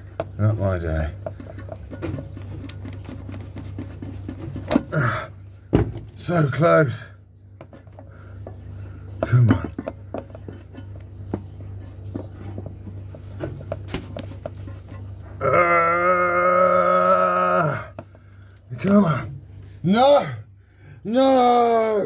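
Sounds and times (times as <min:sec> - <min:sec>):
long straining groan: 0:15.4 - 0:18.0.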